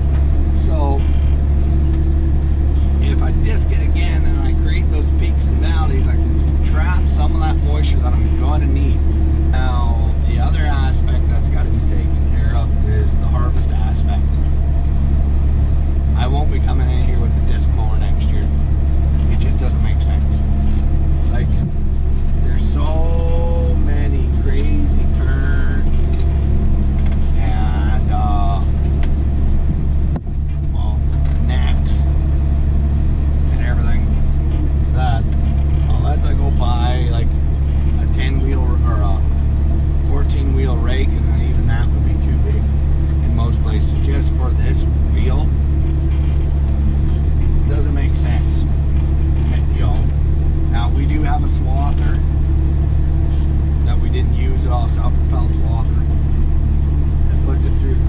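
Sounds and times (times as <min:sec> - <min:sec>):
tractor engine droning: 0:00.0 - 0:58.0.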